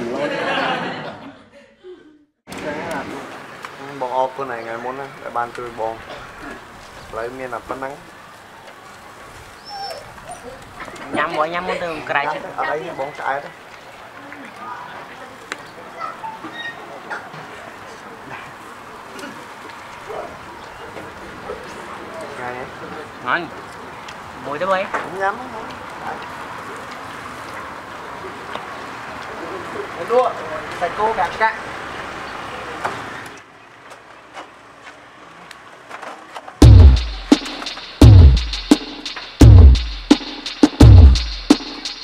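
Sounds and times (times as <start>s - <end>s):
street ambience: 0.0s - 42.0s
outdoor background hiss: 2.5s - 16.0s, 16.8s - 42.0s.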